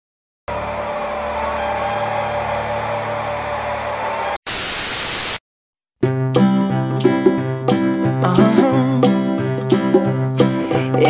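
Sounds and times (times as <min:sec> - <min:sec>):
bright white-noise static: 0:04.5 - 0:05.4
static hiss: 0:04.5 - 0:05.4.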